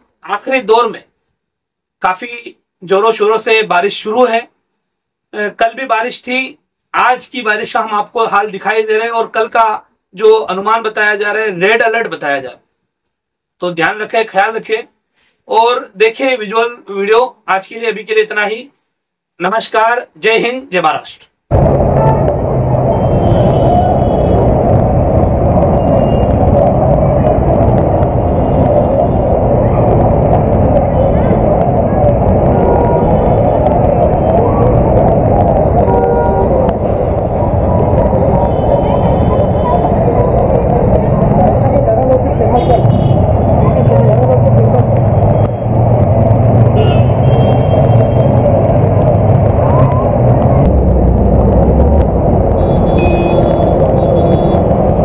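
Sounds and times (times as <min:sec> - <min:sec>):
heavy rain: 0:21.5 - 0:55.0.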